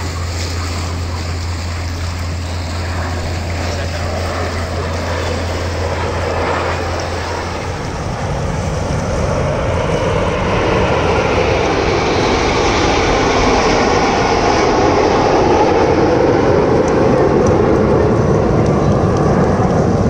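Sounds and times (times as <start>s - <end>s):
jets flying past: 0.0s - 20.0s
low steady hum: 0.0s - 20.0s.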